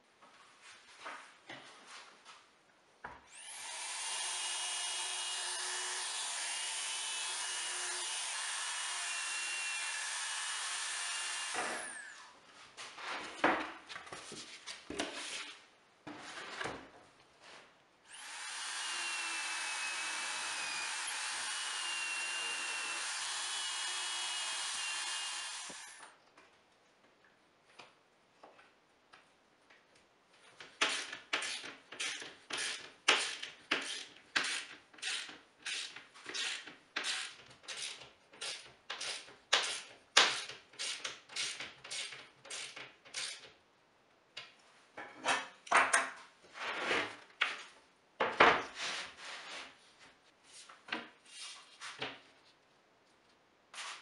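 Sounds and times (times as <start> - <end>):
power drill whining: 3.3 - 12.3, 18.1 - 26.1
workpiece knocks and clatter: 45.0 - 46.2.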